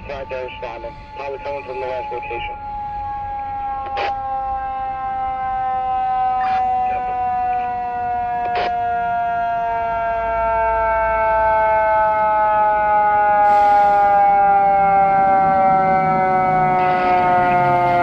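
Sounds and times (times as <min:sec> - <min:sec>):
fire engine siren: 0:00.0 - 0:18.0.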